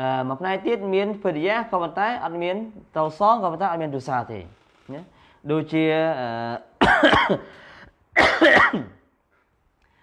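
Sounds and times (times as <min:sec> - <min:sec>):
person coughing: 0:06.8 - 0:07.6, 0:08.2 - 0:09.1.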